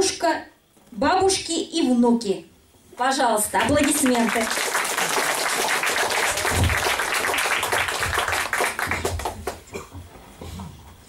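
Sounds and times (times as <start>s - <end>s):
audience applauding: 3.6s - 9.7s.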